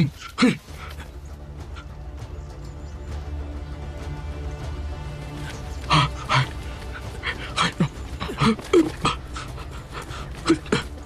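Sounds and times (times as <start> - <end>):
low music bed: 0.0 - 11.0
person breathing hard: 5.9 - 10.9.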